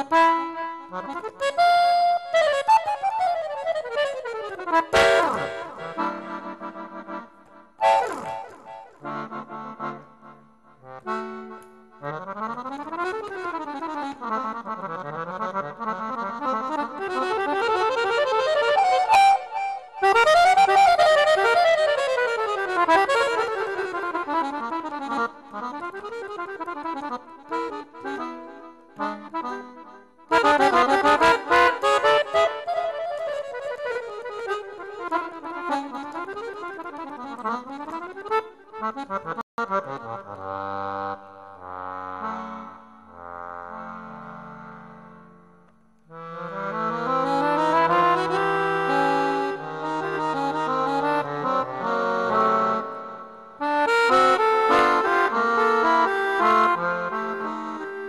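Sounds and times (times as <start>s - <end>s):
accordion fast runs: 0.0s - 10.0s, 11.1s - 42.8s, 46.2s - 58.0s.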